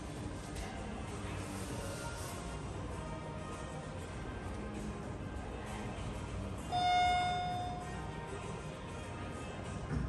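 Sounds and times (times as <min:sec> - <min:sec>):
elevator arrival chime: 0:06.7 - 0:08.1.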